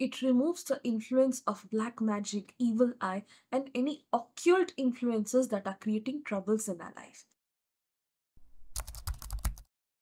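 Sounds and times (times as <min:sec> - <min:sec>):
keyboard clicks: 0:08.7 - 0:09.7.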